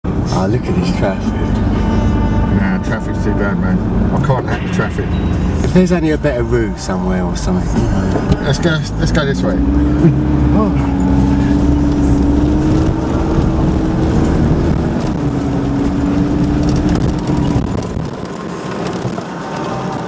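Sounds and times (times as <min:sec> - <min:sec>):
car engine from inside cab: 0:00.1 - 0:20.0
person laughing: 0:10.0 - 0:10.9.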